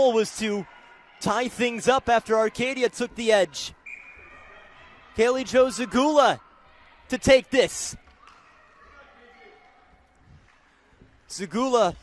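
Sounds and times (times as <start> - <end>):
distant crowd voices: 0.0 - 12.0.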